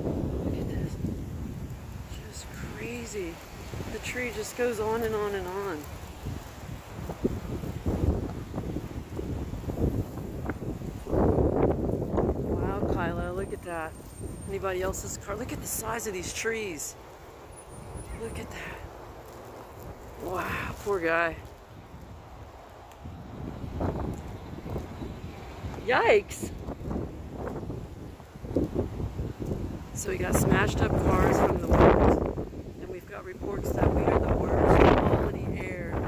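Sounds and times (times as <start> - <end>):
wind buffeting microphone: 0.0 - 36.0.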